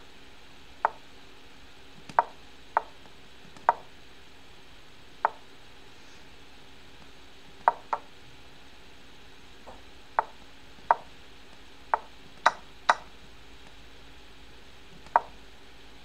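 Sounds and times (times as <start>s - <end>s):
wooden chess piece knock: 7.7s - 8.1s.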